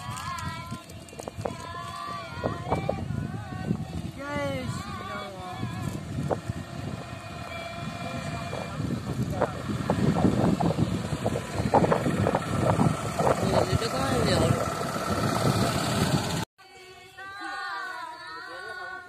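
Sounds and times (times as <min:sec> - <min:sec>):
people's voices: 0:00.0 - 0:15.8
auto-rickshaw engine running: 0:00.0 - 0:16.5.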